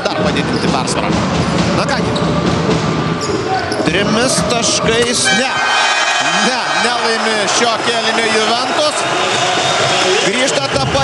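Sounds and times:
arena noise: 0.0 - 11.0
commentator talking: 3.5 - 9.0.

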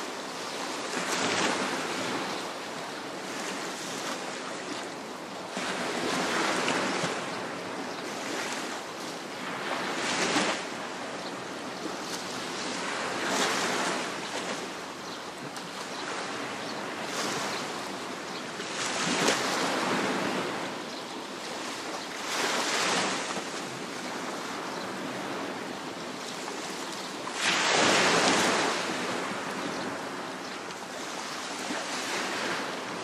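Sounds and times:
surf hissing on shore: 0.0 - 33.0.

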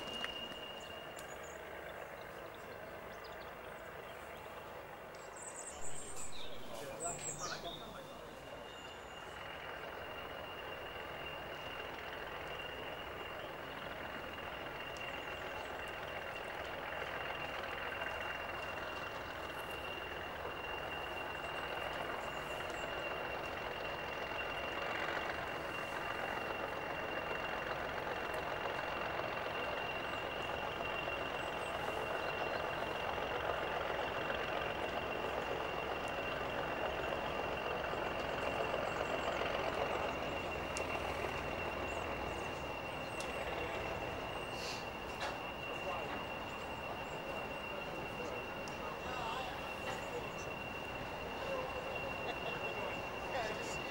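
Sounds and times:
diesel locomotive engine running: 0.0 - 53.9
high-pitched whine: 0.0 - 53.9.

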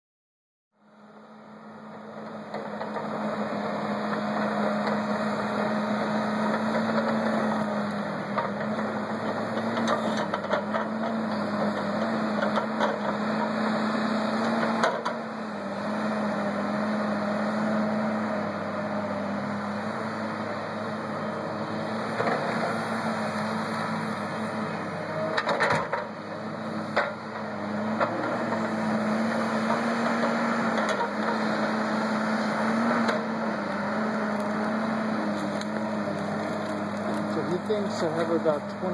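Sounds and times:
diesel engine running: 0.8 - 38.9.

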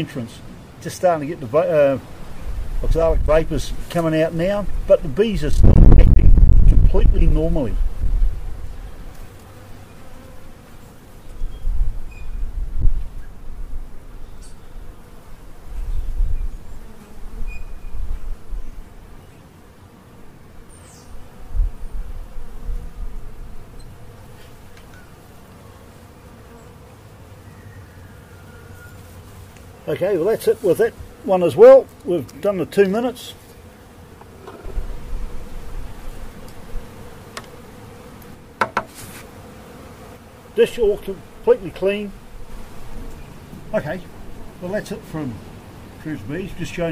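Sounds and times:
honeybees humming: 0.0 - 46.9
wind rumble on microphone: 2.4 - 3.8, 4.6 - 8.8, 11.4 - 14.0, 15.7 - 16.7, 17.3 - 18.8, 21.4 - 23.7.

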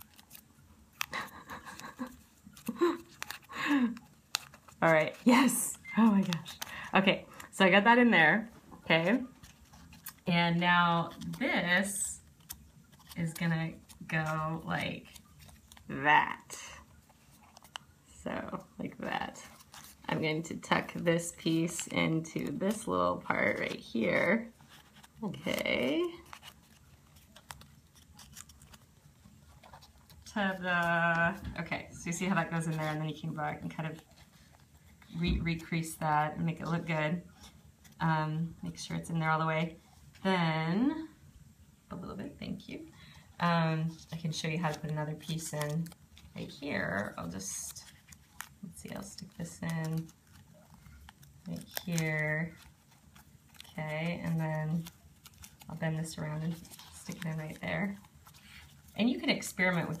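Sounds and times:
sharp paper crackle: 0.0 - 7.6, 10.9 - 18.0, 19.0 - 31.5, 43.8 - 60.0
paper crinkling and rustling: 0.0 - 7.8, 8.9 - 40.9, 43.0 - 60.0.

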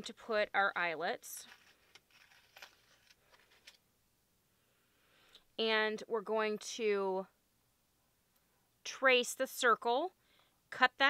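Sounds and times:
plastic packaging rustling: 1.4 - 3.8.

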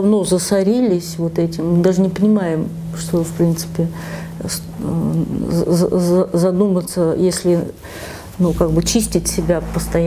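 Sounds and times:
woman speaking: 0.0 - 7.8, 8.4 - 10.0.

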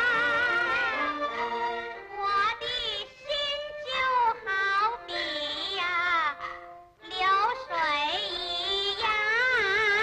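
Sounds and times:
woman singing opera: 0.0 - 1.5
instrumental accompaniment: 0.0 - 10.0.

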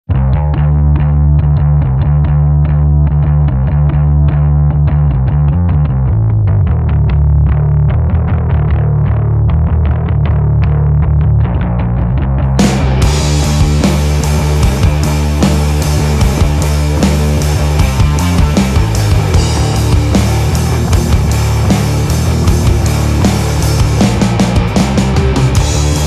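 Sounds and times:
distorted electric guitar riff: 0.1 - 26.0.

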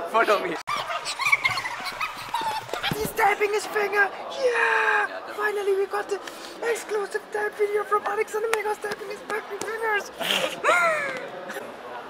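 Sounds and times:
group of people laughing: 0.0 - 3.6, 9.9 - 11.7.

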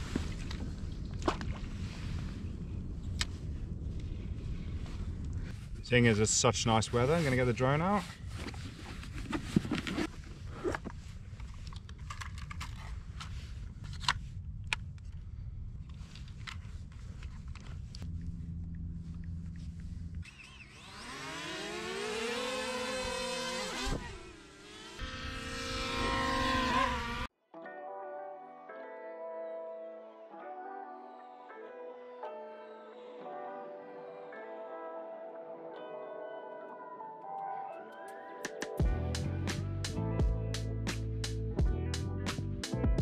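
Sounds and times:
drone propeller motors whining: 18.0 - 27.3
soft music: 27.4 - 43.0.

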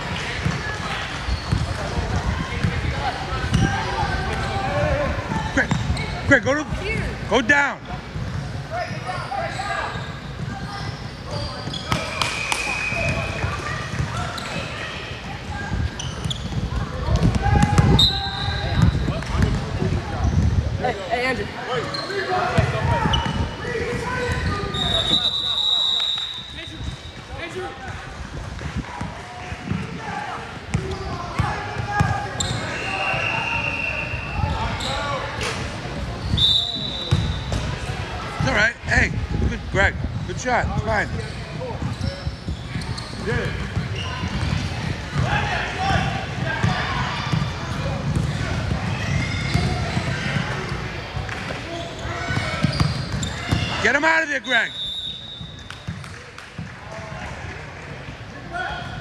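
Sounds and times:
sneakers squeaking: 0.0 - 7.2, 8.1 - 38.5, 40.0 - 59.0
voices of players and spectators: 0.0 - 59.0.

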